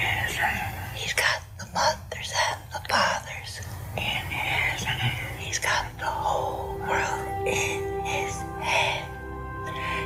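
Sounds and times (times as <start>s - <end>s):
low steady hum: 0.0s - 10.0s
woman whispering: 0.0s - 10.0s.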